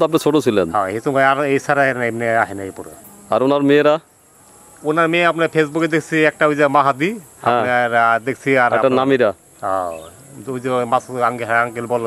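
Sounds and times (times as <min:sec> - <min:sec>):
man talking: 0:00.0 - 0:04.1, 0:04.8 - 0:12.0
insects droning: 0:00.0 - 0:12.0.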